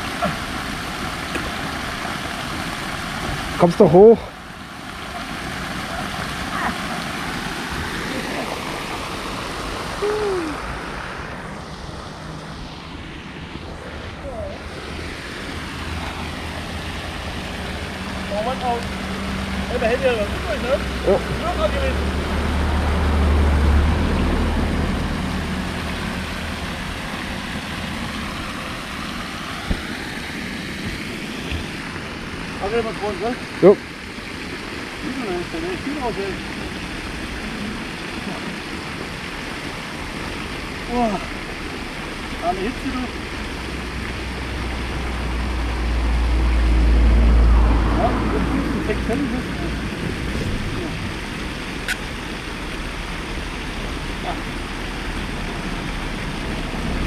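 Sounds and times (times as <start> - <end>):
drone propeller noise: 0.0 - 35.0.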